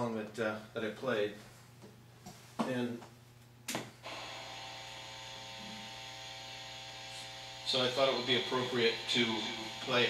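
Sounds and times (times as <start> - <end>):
electrical hum with faint whine: 0.0 - 10.0.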